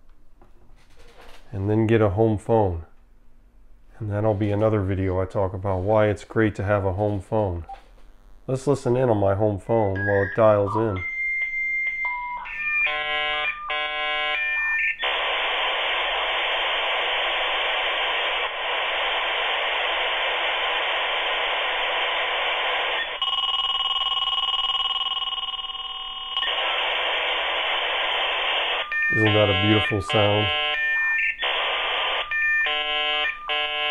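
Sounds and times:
modem rushing hiss: 15.0 - 23.2, 26.5 - 30.8
dial-up modem handshake tones: 26.5 - 33.9.

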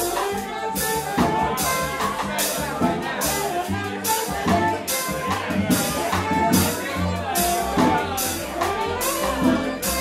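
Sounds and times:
drum kit with cymbals: 0.0 - 10.0
walking bass notes: 0.0 - 10.0.

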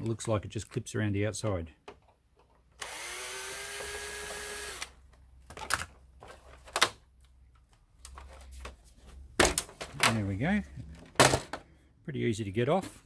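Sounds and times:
cordless drill motor whining: 2.8 - 5.0.

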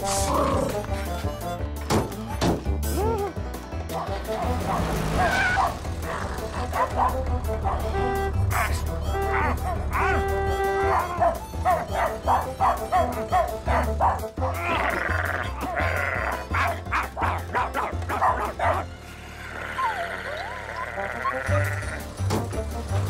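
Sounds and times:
cartoon dogs barking: 3.9 - 18.9, 19.5 - 22.0.

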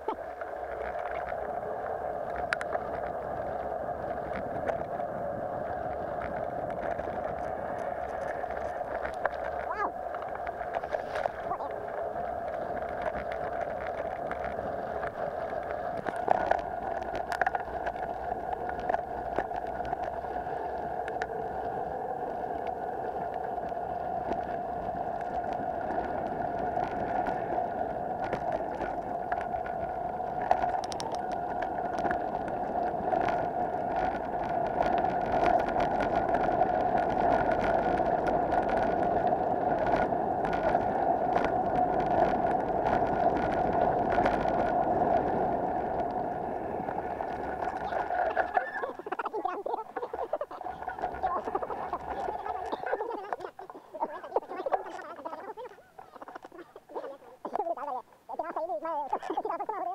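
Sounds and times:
bike buzzing hum: 1.0 - 48.6.

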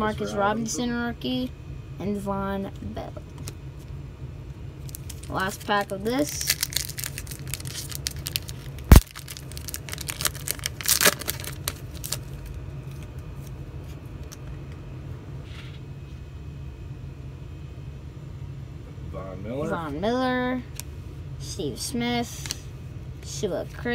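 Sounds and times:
steady low hum: 0.0 - 23.9
foil wrapper tearing and crinkling: 4.8 - 13.0
cards being handled: 4.9 - 14.7.

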